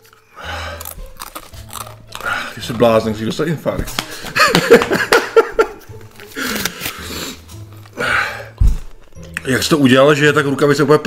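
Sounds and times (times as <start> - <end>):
chip crunching: 0.0 - 3.4.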